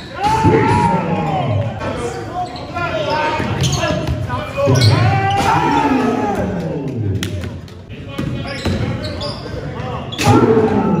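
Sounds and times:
people shouting: 0.1s - 1.7s, 4.7s - 6.9s, 10.2s - 11.0s.

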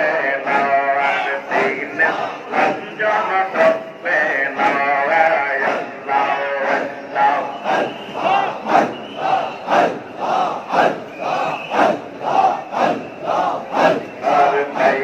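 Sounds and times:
crowd of men chanting: 0.0s - 15.0s.

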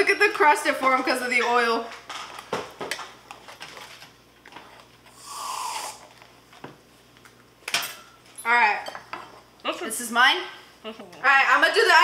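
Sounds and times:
hiss: 5.2s - 6.0s.

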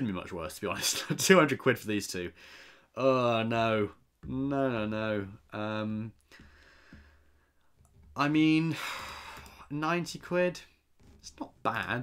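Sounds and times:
faint breath: 2.4s - 2.9s, 6.3s - 7.5s, 8.7s - 9.6s.

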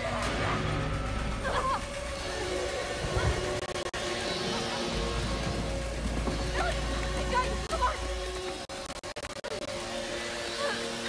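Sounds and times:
low rumble: 0.0s - 8.7s.

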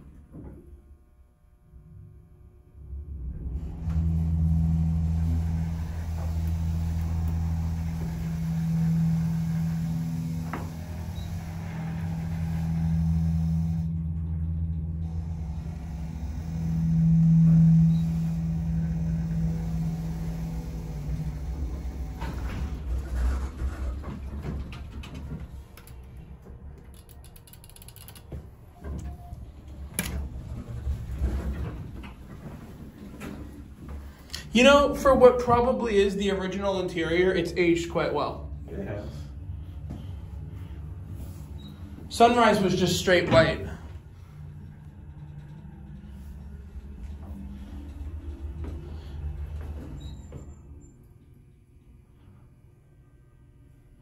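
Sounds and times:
elevator low hum: 0.0s - 54.0s.

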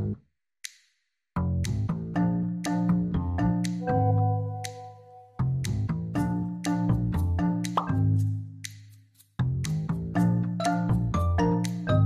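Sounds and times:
playful music with struck notes: 1.4s - 12.0s.

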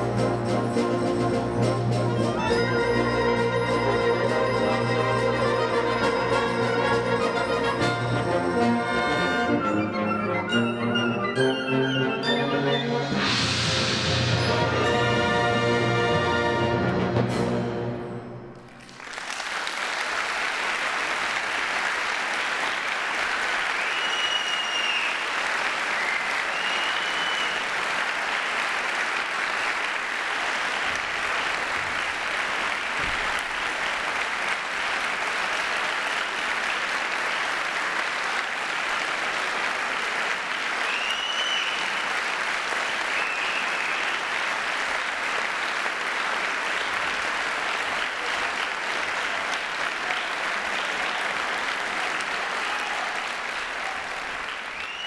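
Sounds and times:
audience applauding: 18.6s - 55.0s
high calls from audience: 49.2s - 55.0s.

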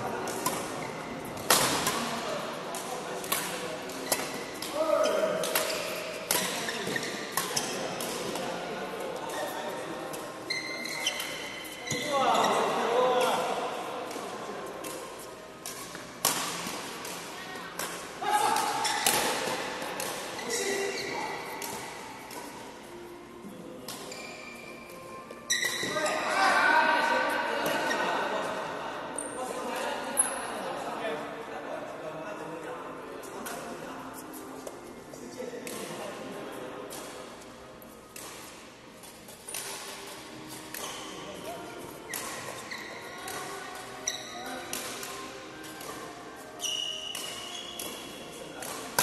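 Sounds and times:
shoes squeaking on court: 0.2s - 2.0s, 3.6s - 13.6s, 18.5s - 23.2s, 23.8s - 26.5s, 37.9s - 49.0s
rackets striking shuttlecock: 0.2s - 8.6s, 13.2s - 23.0s, 23.8s - 24.3s, 35.6s - 36.0s, 38.1s - 49.0s.

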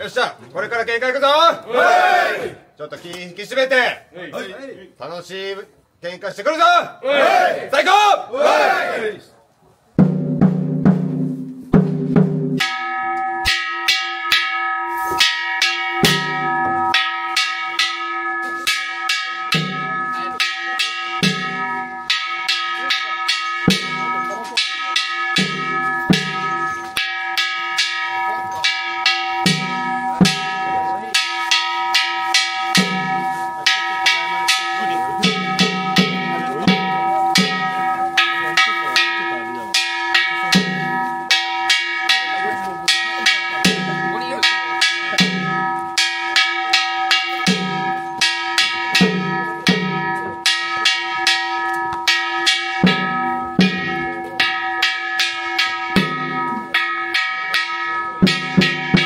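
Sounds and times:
deep drum beats: 10.0s - 14.0s, 19.1s - 59.0s
bell struck rapidly: 10.4s - 59.0s.

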